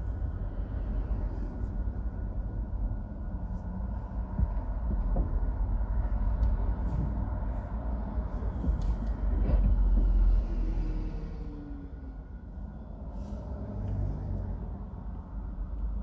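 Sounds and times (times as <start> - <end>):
low traffic rumble: 0.0 - 16.0
bus passing close: 6.0 - 15.6.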